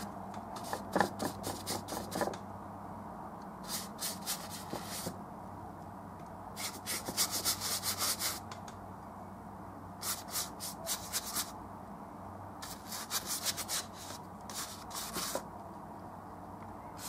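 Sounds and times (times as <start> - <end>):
paintbrush scrubbing canvas: 0.6 - 2.3, 3.7 - 5.2, 6.6 - 8.4, 10.0 - 11.5, 12.6 - 15.4.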